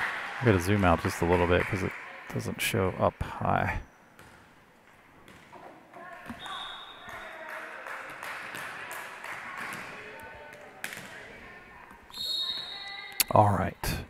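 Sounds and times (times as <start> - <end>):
people talking in a gymnasium: 0.0 - 14.0
volleyball bouncing on wooden floor: 4.2 - 7.4, 9.4 - 12.2.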